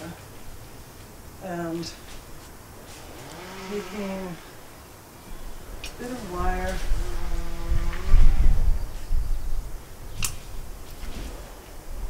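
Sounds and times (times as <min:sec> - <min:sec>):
low rumble: 0:03.0 - 0:10.0.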